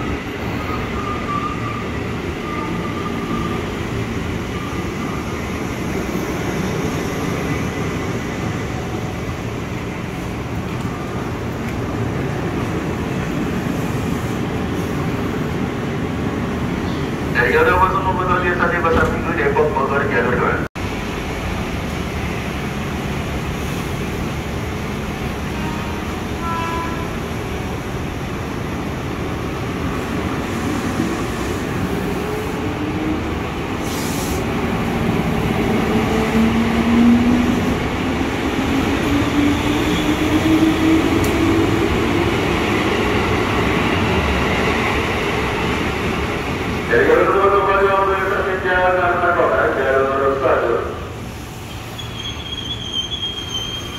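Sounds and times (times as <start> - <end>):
train wheels rumbling on rails: 20.8 - 50.6.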